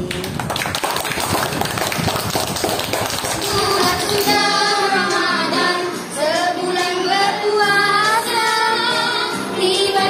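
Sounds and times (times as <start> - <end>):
children clapping: 0.0 - 5.2.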